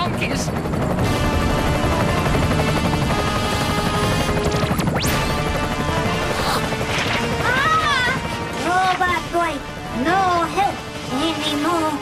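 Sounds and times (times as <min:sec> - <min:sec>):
dramatic music: 0:00.5 - 0:12.0.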